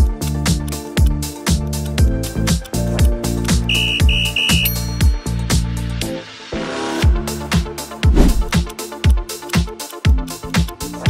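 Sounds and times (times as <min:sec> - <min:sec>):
short electronic beeps: 0:03.7 - 0:04.9
high ringing tone: 0:03.7 - 0:05.2.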